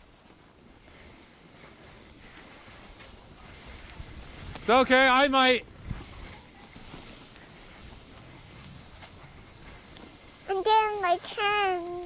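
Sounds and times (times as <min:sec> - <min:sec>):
skis sliding over snow: 0:00.0 - 0:12.0.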